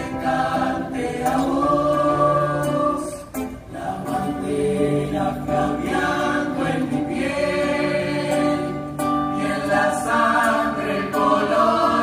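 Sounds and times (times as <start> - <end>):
chorus singing sustained notes: 0.0 - 12.0.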